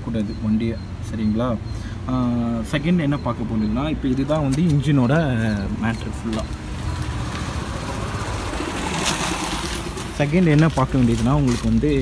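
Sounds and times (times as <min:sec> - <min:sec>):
motorcycle engine idling: 0:05.0 - 0:10.6.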